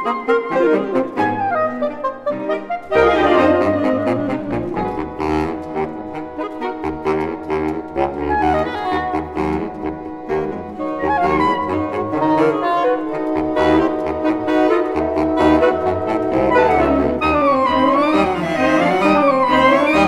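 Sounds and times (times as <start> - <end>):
saxophone ensemble playing chords: 0.0 - 20.0.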